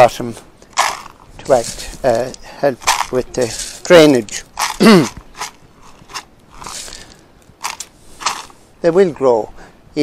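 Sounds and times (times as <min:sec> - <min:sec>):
grit crunching clicks: 0:00.6 - 0:08.6
person coughing: 0:04.8 - 0:05.2.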